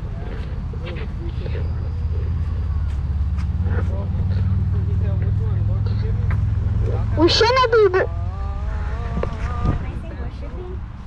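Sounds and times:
faint voices talking: 0:00.0 - 0:11.0
low vehicle rumble: 0:00.0 - 0:11.0.

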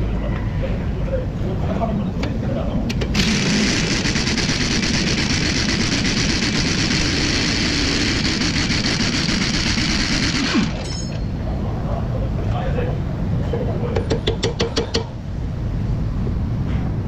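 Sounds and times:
impact wrench hammering: 0:14.0 - 0:15.1.

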